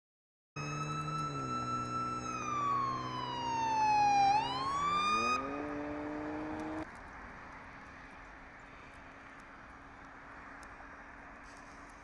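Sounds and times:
siren wailing: 0.6s - 6.8s.

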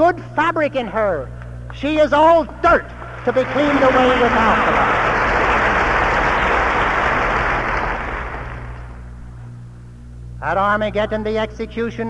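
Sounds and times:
low mains hum: 0.0s - 12.0s
stadium audience applauding: 3.0s - 9.1s.

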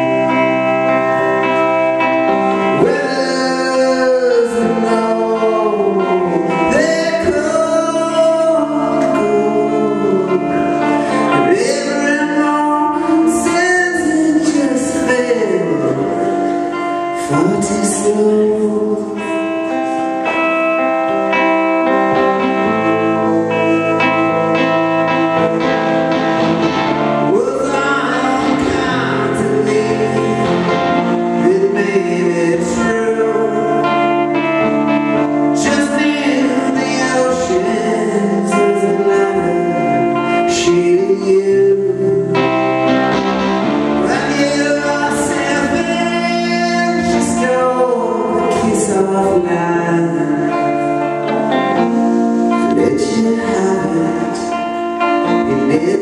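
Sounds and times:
electric guitar through amplifier: 0.0s - 56.0s
man singing long held notes: 2.2s - 56.0s.

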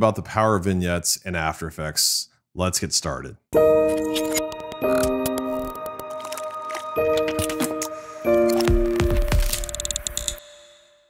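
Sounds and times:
held synth chord: 3.6s - 9.8s.

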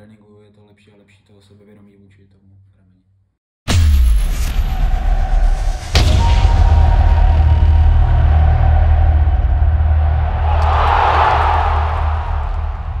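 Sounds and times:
impact hit: 3.7s - 13.0s
deep bass rumble: 5.2s - 13.0s.

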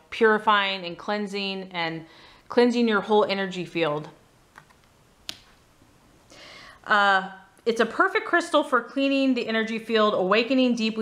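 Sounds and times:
person speaking: 0.0s - 5.4s, 6.8s - 11.0s.

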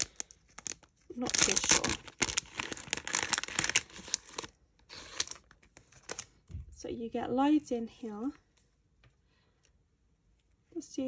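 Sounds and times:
plastic packet crinkling: 0.0s - 6.4s.

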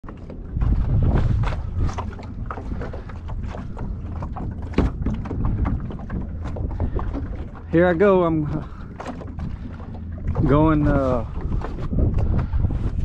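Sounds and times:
knocks and splashes: 0.0s - 13.0s
waves slapping boat hull: 0.0s - 13.0s
wind rumbling on microphone: 0.0s - 13.0s.

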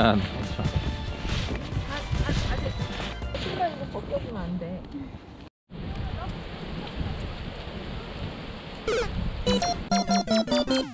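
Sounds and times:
bouncy plucked synth music: 8.9s - 10.9s.

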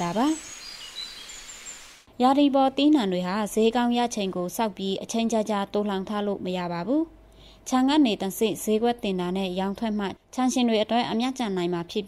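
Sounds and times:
bird chirps and whistles: 0.0s - 2.0s.

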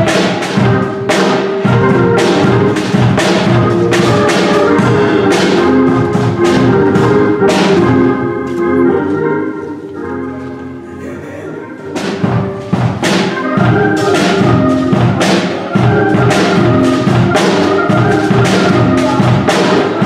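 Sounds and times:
drum and cymbal hits: 0.0s - 8.1s, 11.9s - 20.0s
organ chords: 0.0s - 20.0s.

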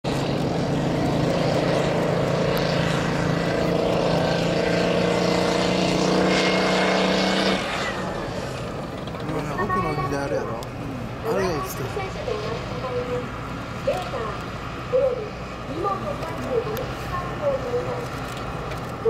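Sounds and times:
tracked vehicle diesel engine: 0.0s - 19.0s.

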